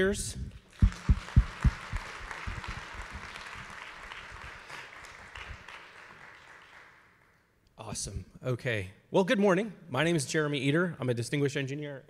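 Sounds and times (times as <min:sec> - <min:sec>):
audience applauding: 0:00.7 - 0:07.4
loud low thumps: 0:00.8 - 0:03.7.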